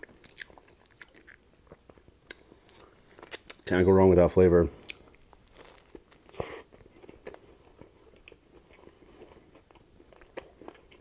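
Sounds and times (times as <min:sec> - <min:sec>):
chewing with wet mouth clicks: 0:00.0 - 0:03.7, 0:04.8 - 0:11.0
biting into a sandwich: 0:04.8 - 0:11.0.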